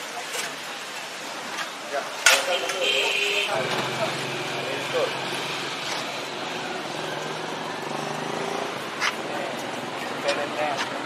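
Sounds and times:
vehicle engine humming: 2.5s - 11.0s.

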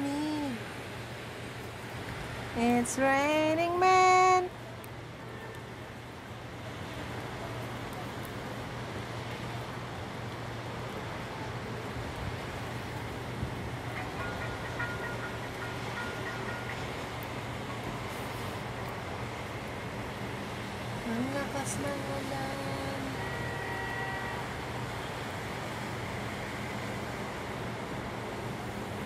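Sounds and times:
heavy rain falling: 0.0s - 29.0s
traffic on wet road: 0.0s - 29.0s.

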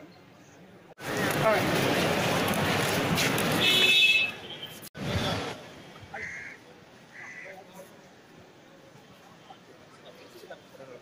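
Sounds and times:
high vehicle horn blast: 3.6s - 4.8s.

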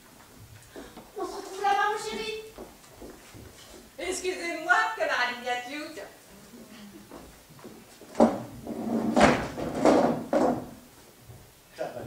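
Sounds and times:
wooden chair knocking and scraping: 7.1s - 10.8s.

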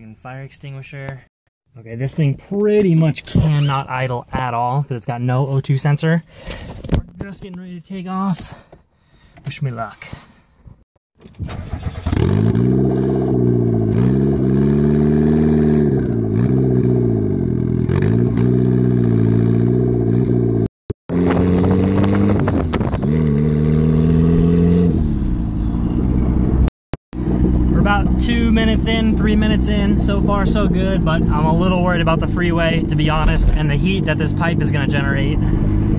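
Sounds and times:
car engine revving: 11.7s - 35.9s.

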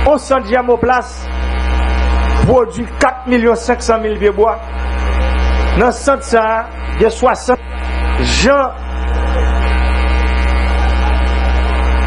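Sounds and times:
electrical hum with buzzing: 0.0s - 12.0s.

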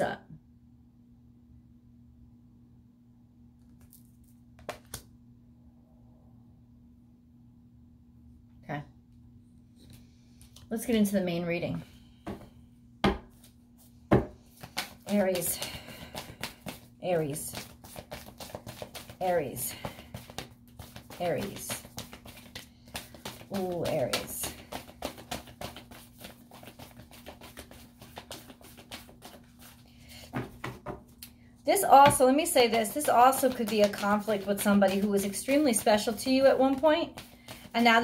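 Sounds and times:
cards being shuffled: 3.6s - 5.1s, 14.5s - 31.2s, 31.8s - 38.0s
cards slapping: 3.6s - 5.1s, 14.1s - 30.8s, 32.0s - 37.8s.

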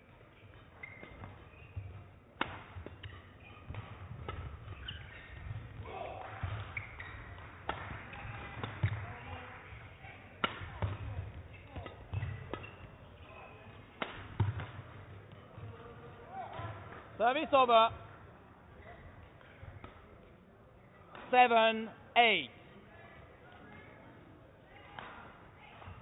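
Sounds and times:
rackets hitting shuttlecock: 0.1s - 17.2s, 24.9s - 26.0s
shoe squeaks: 0.3s - 2.2s, 3.1s - 3.7s, 4.5s - 5.7s, 6.7s - 7.4s, 11.0s - 13.7s.

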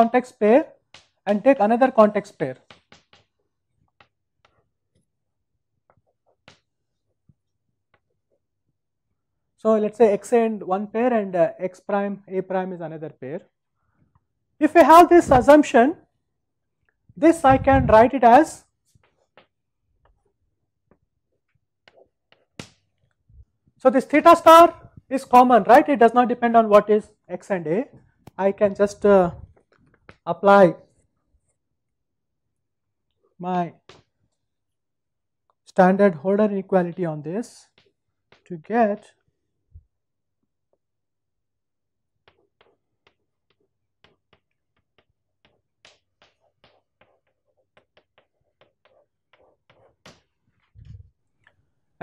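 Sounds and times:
chalk tapping on chalkboard: 2.2s - 4.7s, 5.9s - 6.8s, 18.9s - 23.0s, 28.6s - 30.2s, 37.6s - 38.8s, 42.1s - 51.1s.

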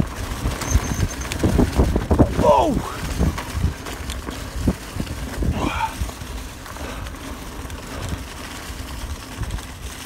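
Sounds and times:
bike tyres rolling on dirt trail: 0.0s - 10.0s
wind rumbling on microphone: 0.0s - 10.0s.

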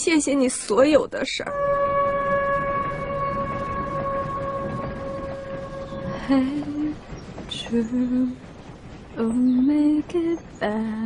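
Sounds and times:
low rumble of train running: 0.0s - 11.0s
train horn blast: 1.5s - 7.2s.

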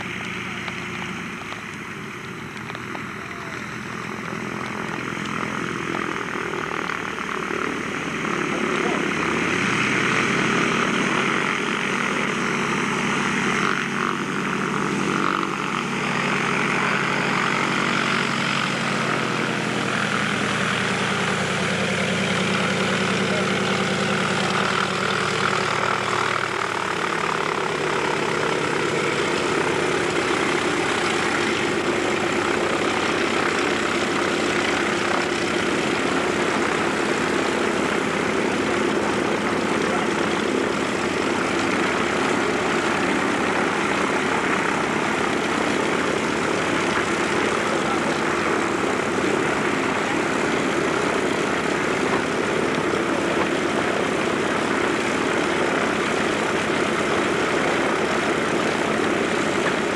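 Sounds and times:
propeller engines running: 0.0s - 59.9s.

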